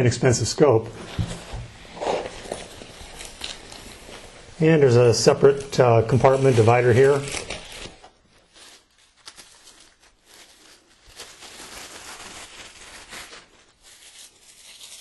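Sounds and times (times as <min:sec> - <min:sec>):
plastic wrapping crinkling: 0:00.8 - 0:15.0.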